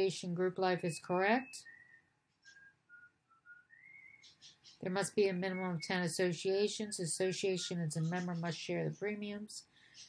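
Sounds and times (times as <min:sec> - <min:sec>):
person whistling: 0:02.6 - 0:04.0.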